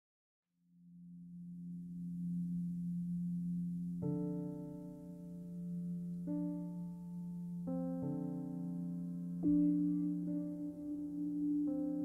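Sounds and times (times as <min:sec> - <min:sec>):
low sustained music note: 0:00.8 - 0:12.0.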